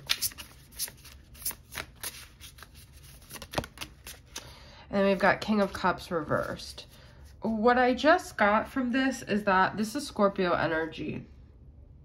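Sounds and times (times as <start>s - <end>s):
cards being shuffled: 0.0s - 4.5s.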